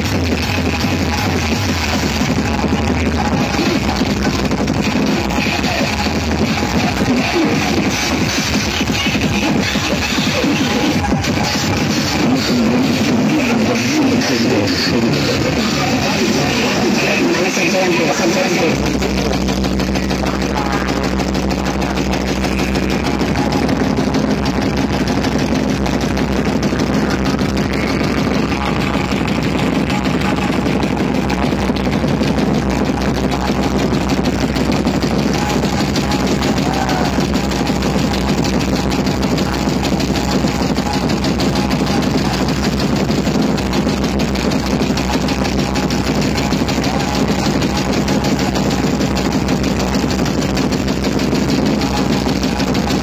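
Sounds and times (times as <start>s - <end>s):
loud bass-heavy dj music: 0.0s - 53.0s.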